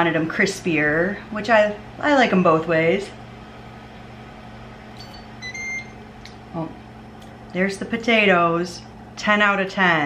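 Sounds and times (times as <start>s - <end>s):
air fryer timer beeping: 5.0s - 6.1s.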